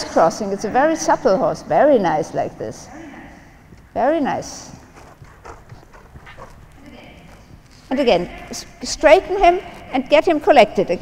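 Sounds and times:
horse hooves trotting on sand: 0.6 - 11.0.

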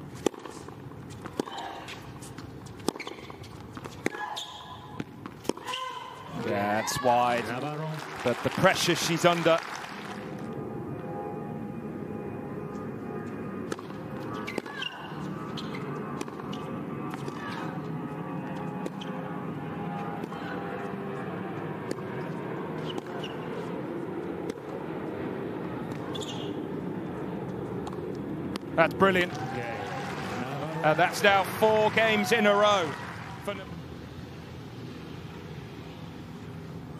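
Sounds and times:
racket hitting ball: 0.2 - 2.0, 16.2 - 17.7
murmur of spectators: 29.3 - 33.8.

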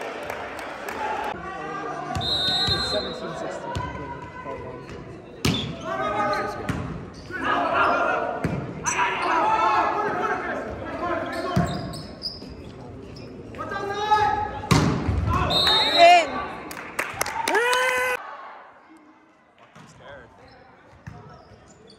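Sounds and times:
players and spectators shouting: 7.2 - 11.6, 17.2 - 18.9.

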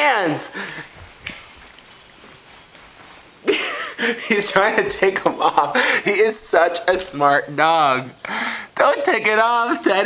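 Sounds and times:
small bells jingling: 0.0 - 10.0.

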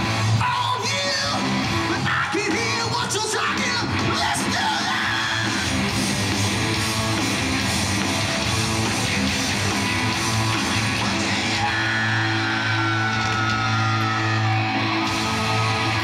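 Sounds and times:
rock music with electric guitar: 0.0 - 16.0.

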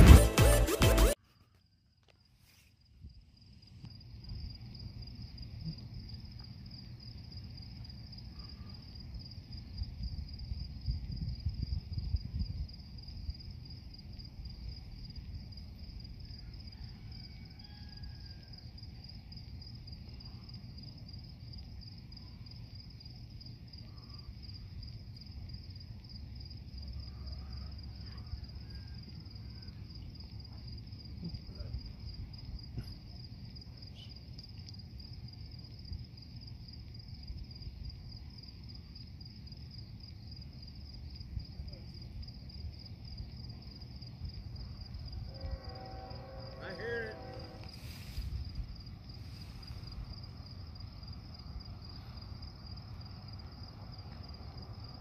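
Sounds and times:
crickets chirping: 1.2 - 55.0.

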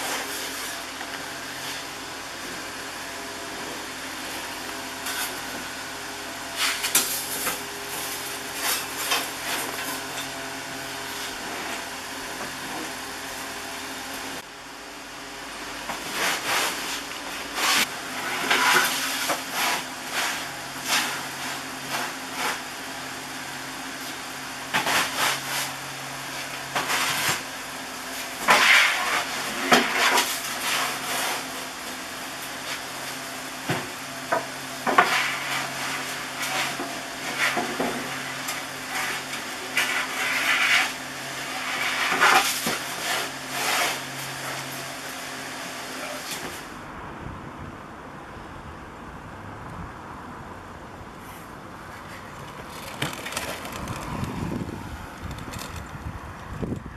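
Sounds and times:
loaves knocking and clattering: 52.4 - 54.4.

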